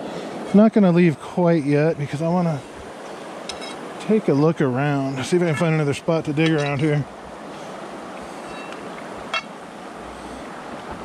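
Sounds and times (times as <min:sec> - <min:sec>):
flowing river water: 0:00.0 - 0:11.0.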